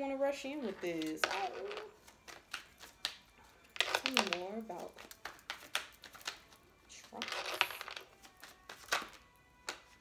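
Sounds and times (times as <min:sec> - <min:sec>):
faint background music: 0:00.0 - 0:10.0
cards tapping and clicking: 0:01.0 - 0:10.0.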